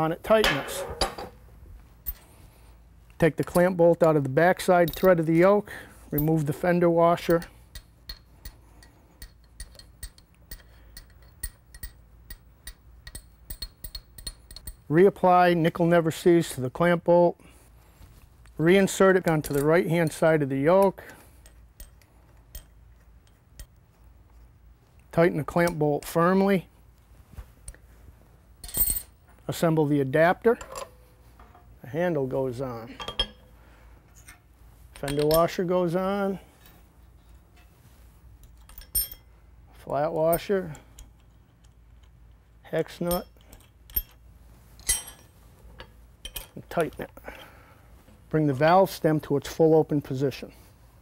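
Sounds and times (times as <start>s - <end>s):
metal nut clinking: 7.3s - 14.9s, 21.4s - 24.5s, 28.6s - 29.2s, 30.6s - 31.7s, 38.4s - 39.3s, 40.2s - 44.2s, 44.8s - 46.7s.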